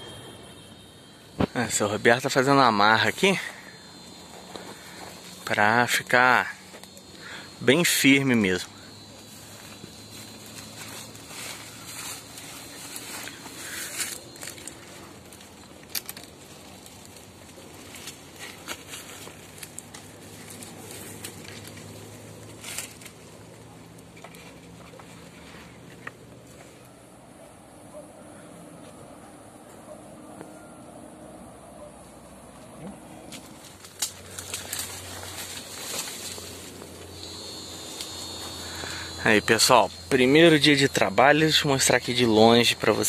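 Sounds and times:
rustling cord and leaves: 0:01.3 - 0:27.1, 0:32.5 - 0:43.0.

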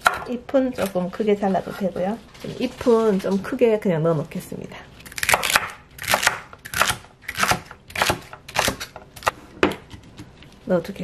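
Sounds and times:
knife slicing celery on board: 0:05.2 - 0:09.3.

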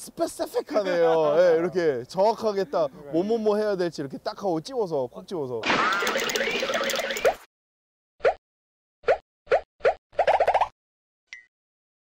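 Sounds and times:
cartoon bloop pops: 0:05.6 - 0:07.5, 0:08.2 - 0:08.4, 0:09.0 - 0:10.8.

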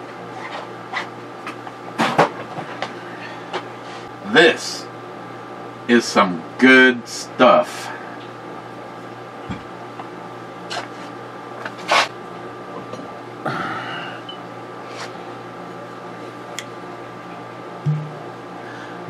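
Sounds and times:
electrical room hum: 0:00.0 - 0:19.0
glass bottle clicking and knocking: 0:17.9 - 0:18.2.

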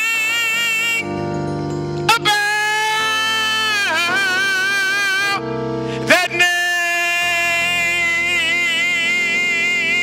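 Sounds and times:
organ chord with vibrato: 0:00.0 - 0:10.0.

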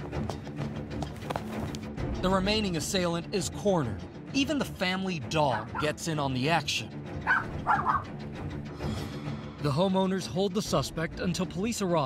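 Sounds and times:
background music: 0:00.0 - 0:12.0
dog barking: 0:05.5 - 0:06.0, 0:07.2 - 0:08.2.

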